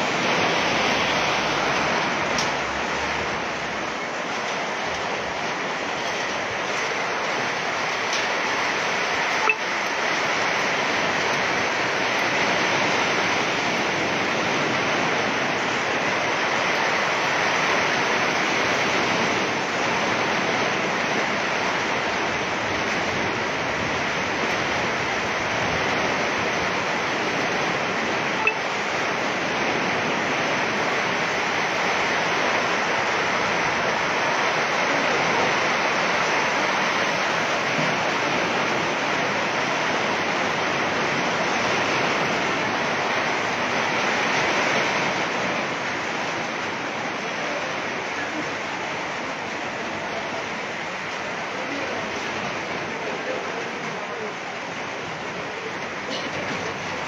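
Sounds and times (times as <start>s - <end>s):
rain and hail on metal roofs: 0.0s - 57.0s.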